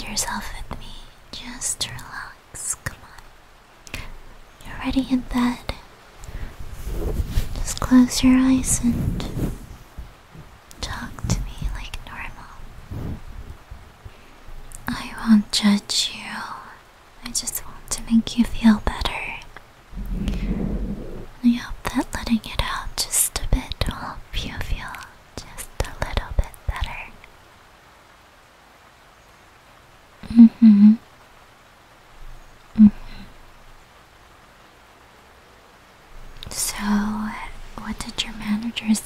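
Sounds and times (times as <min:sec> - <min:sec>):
woman whispering: 0:00.0 - 0:03.3, 0:03.9 - 0:05.8, 0:07.5 - 0:09.4, 0:10.8 - 0:12.7, 0:14.8 - 0:19.6, 0:21.2 - 0:27.3, 0:36.4 - 0:39.0.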